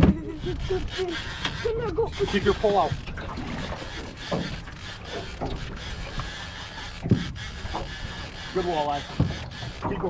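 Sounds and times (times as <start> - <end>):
water noise: 0.0 - 10.0.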